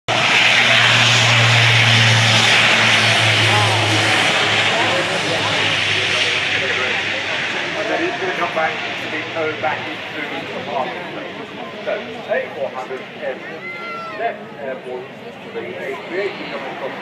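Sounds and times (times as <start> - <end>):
broad rushing noise: 0.1 - 17.0
deep propeller hum: 0.1 - 17.0
turboprop aircraft drone: 0.1 - 17.0.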